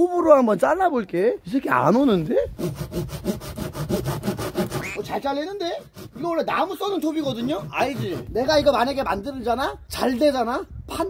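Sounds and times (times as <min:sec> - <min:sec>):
hand saw cutting pipe: 0:02.5 - 0:08.7.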